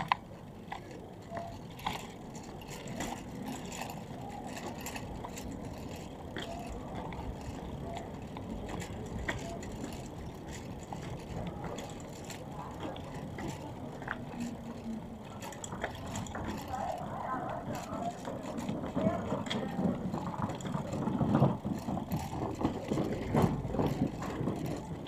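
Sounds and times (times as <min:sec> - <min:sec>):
indistinct voices of passers-by: 0:00.0 - 0:25.0
wheels rattling over stone paving: 0:00.0 - 0:25.0.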